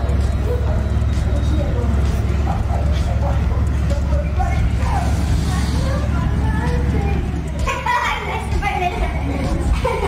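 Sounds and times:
faint voices: 0.0s - 10.0s
loud low rumble: 0.0s - 10.0s.

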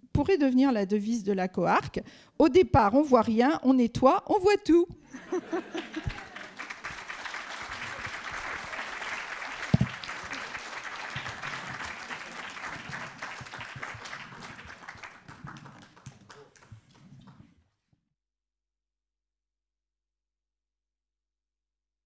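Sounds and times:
audience applauding: 5.2s - 17.4s.

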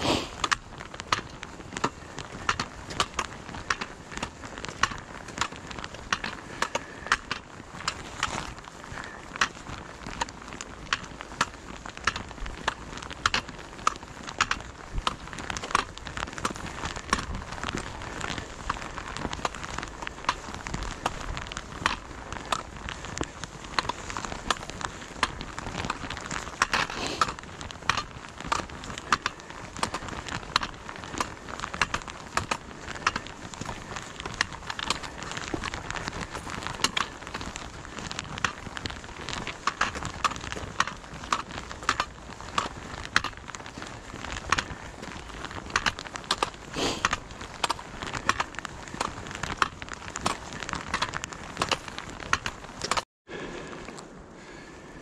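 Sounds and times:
trekking pole striking asphalt: 0.0s - 53.0s
clothing rustling: 0.0s - 53.1s
footsteps on pavement: 0.0s - 54.7s.

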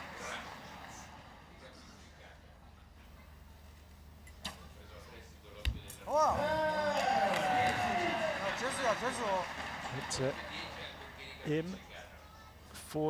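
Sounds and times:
voices shouting and cheering: 6.1s - 11.4s.

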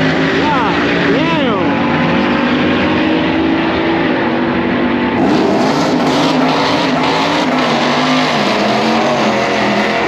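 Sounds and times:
racing engine at high revs: 0.0s - 10.0s.

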